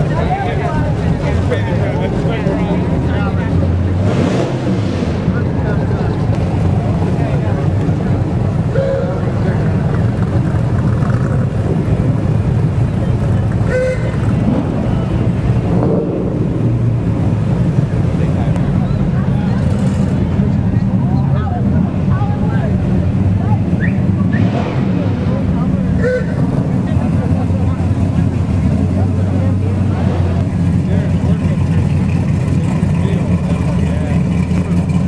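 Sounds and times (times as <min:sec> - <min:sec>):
car engines rumbling past: 0:00.0 - 0:35.0
crowd voices: 0:00.0 - 0:35.0.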